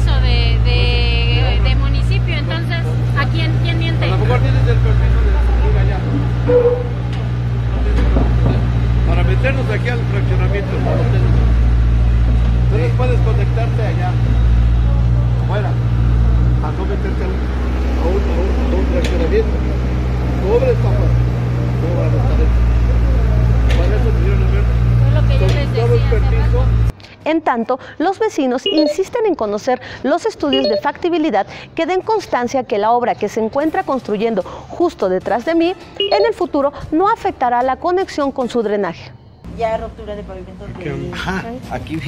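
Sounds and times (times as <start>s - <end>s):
loud steady low rumble: 0.0s - 26.9s
people talking and arguing: 0.0s - 42.0s.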